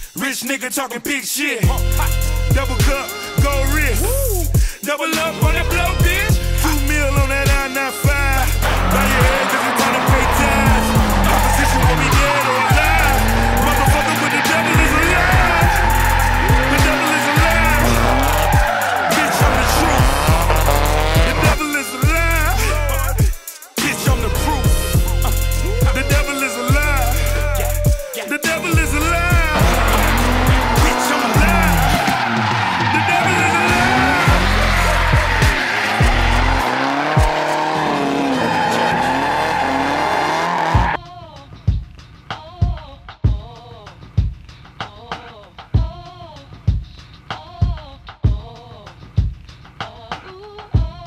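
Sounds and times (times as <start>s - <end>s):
hip-hop beat with deep bass: 0.0s - 51.0s
car engine revving: 5.8s - 23.2s, 24.0s - 27.9s, 28.6s - 41.0s
tyres squealing: 7.0s - 23.2s, 24.4s - 41.0s.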